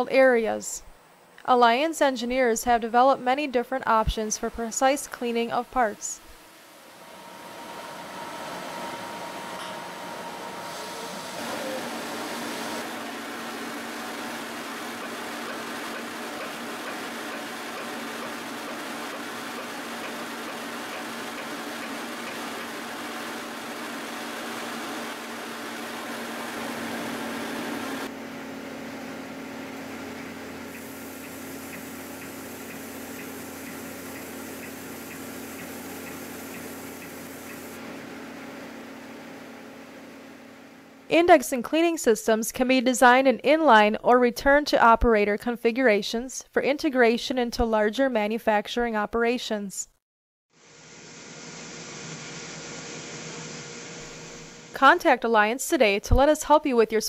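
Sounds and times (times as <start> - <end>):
water spray rushing hiss: 30.7 - 37.8.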